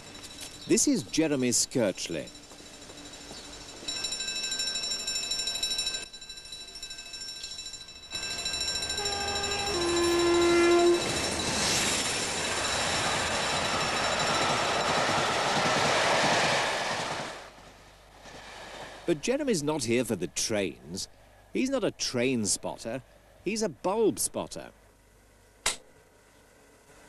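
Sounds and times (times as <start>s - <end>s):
train passing loudly: 8.2s - 19.2s
two-tone locomotive horn: 8.8s - 11.2s.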